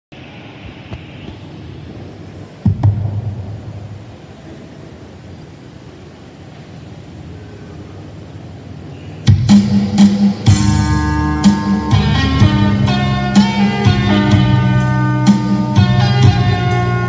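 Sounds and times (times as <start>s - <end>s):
hall room noise: 0.1s - 17.0s.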